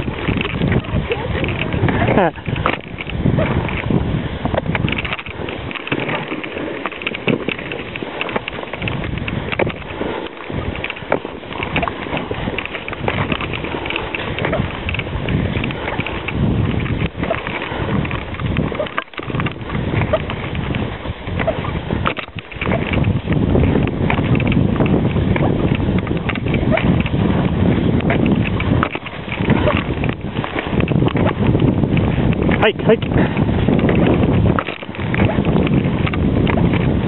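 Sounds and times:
crunches and clicks: 0:00.0 - 0:37.0
dog's paws running: 0:00.0 - 0:37.0
ski poles planting: 0:00.0 - 0:37.0
skis scraping over packed snow: 0:00.0 - 0:37.0
wind buffeting microphone: 0:00.0 - 0:37.0.

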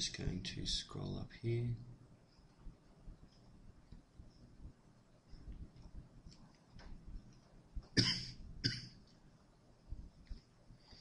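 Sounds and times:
person coughing: 0:08.0 - 0:08.9.

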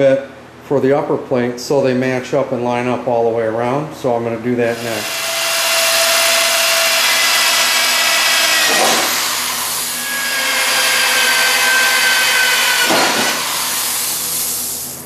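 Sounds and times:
electric drill cutting metal: 0:04.7 - 0:15.0.

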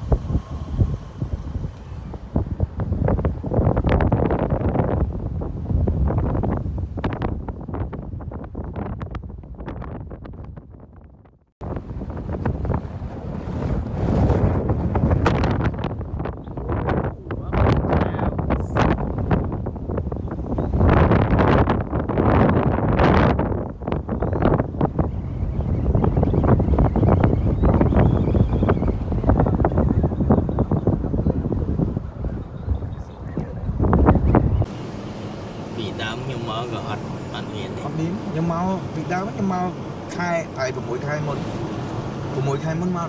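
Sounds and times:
gusty wind buffeting microphone: 0:00.0 - 0:43.0
vehicle rumble: 0:00.0 - 0:43.0
voices: 0:30.2 - 0:34.4, 0:35.3 - 0:43.0.

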